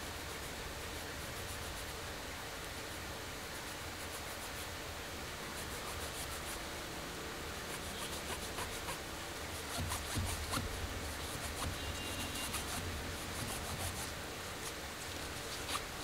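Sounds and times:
steady hiss: 0.0 - 16.0
cloth rubbing metal ring: 15.4 - 16.0.

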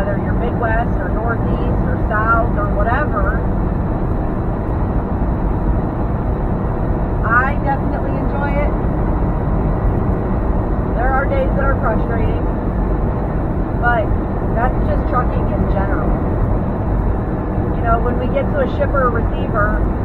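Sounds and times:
truck engine and road noise: 0.0 - 20.0.

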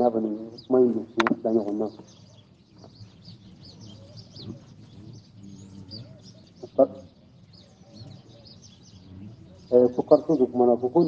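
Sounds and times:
man speaking: 0.0 - 2.0, 4.4 - 7.1, 9.1 - 11.0
murmur of voices: 0.0 - 11.0
small birds chirping: 0.0 - 11.0.

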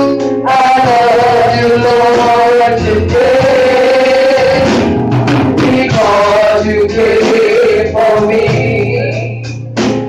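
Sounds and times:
woman singing gospel: 0.0 - 4.8, 5.6 - 9.7
church band with drums: 0.0 - 10.0.

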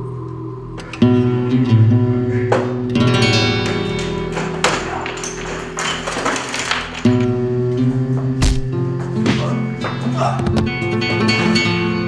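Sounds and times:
flamenco acoustic guitar strumming: 0.9 - 12.0.

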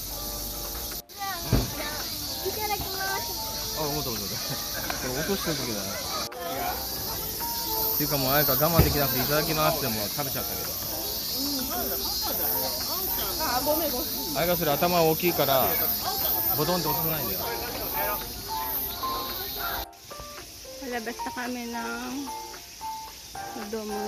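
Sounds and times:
steady high-pitched hiss: 0.0 - 24.0
indistinct voices talking: 0.8 - 20.0.

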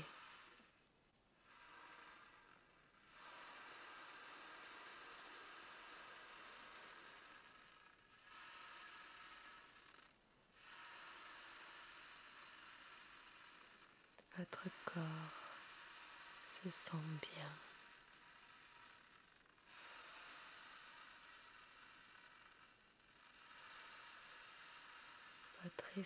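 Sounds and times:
ocean drum beads rolling: 0.0 - 0.7, 1.4 - 25.7
soft voice: 16.5 - 17.6, 25.6 - 26.0.

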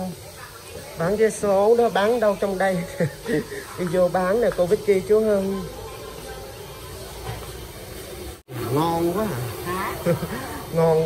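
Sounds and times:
faint indistinct voices: 0.0 - 11.0
steady hiss: 0.0 - 11.0.

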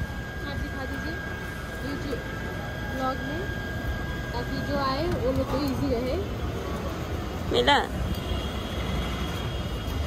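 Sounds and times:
faint high whine: 0.0 - 10.0
street rumble: 0.0 - 10.0.

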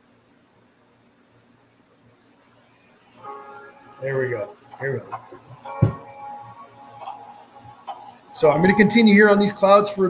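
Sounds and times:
background music held chord: 2.6 - 10.0.

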